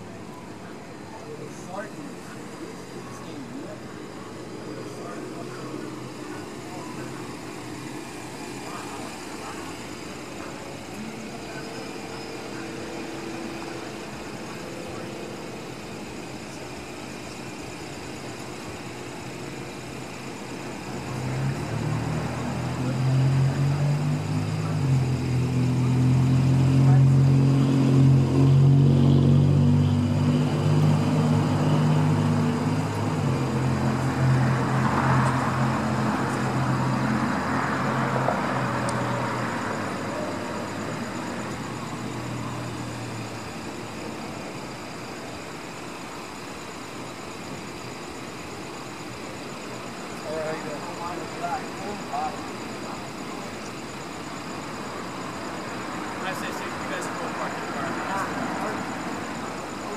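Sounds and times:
vehicle engine humming: 0.0s - 48.0s.

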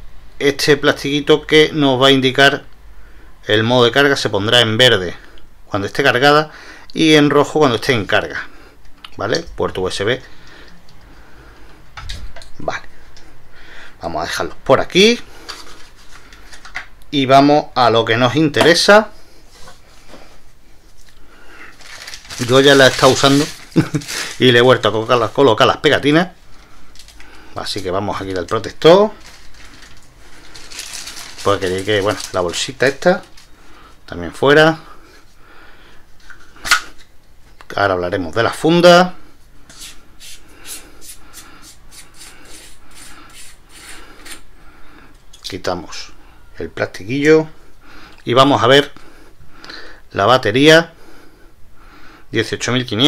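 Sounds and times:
soft plastic rustle: 15.4s - 16.8s, 19.2s - 34.1s.

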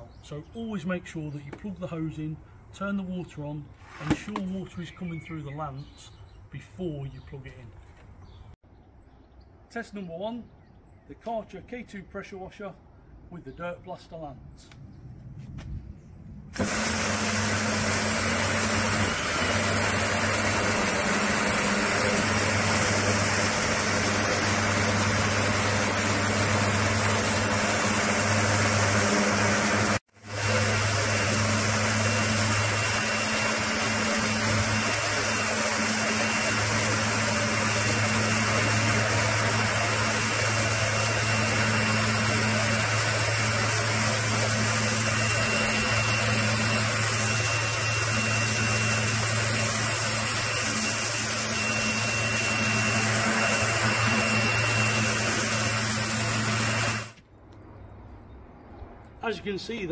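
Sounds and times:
high-pressure water jet hissing: 16.6s - 57.2s
pressure washer pump hum: 16.6s - 57.2s.

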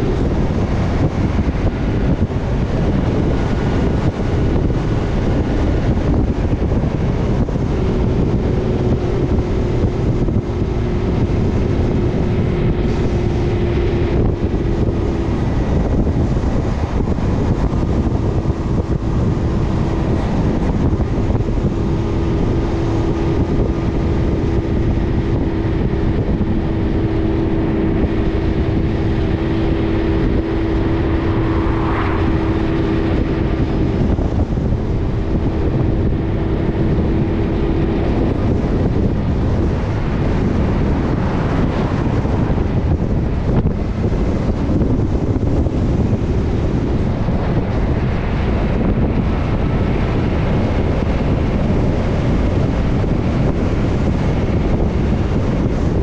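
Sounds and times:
car passing: 0.0s - 56.0s
steady hum: 0.0s - 56.0s
truck engine: 0.0s - 56.0s
wind rushing over camera: 0.0s - 56.0s.

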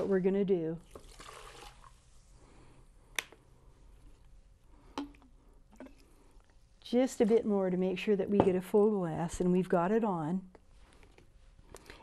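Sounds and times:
water pouring and splashing: 0.8s - 2.0s.

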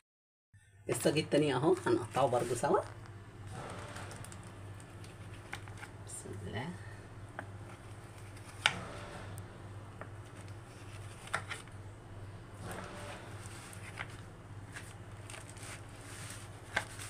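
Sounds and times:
steady low hum: 0.6s - 17.0s.

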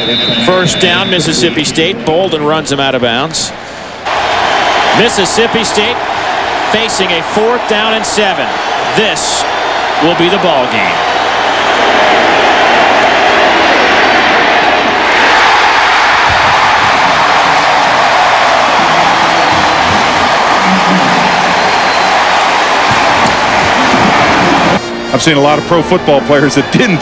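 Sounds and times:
stadium crowd cheering: 0.0s - 27.0s.

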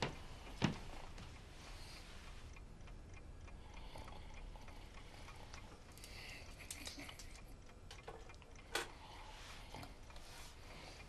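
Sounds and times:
clock ticking: 0.0s - 11.0s
low room hum: 0.0s - 11.0s.

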